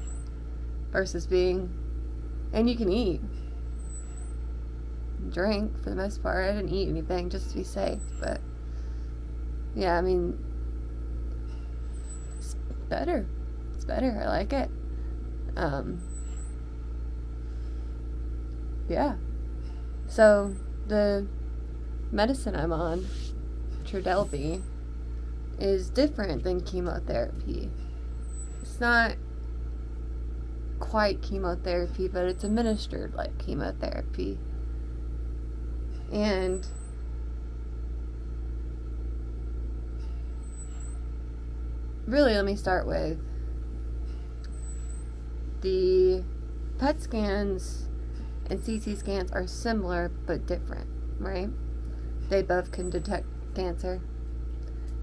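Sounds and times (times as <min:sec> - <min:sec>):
low mechanical hum: 0:00.0 - 0:55.0.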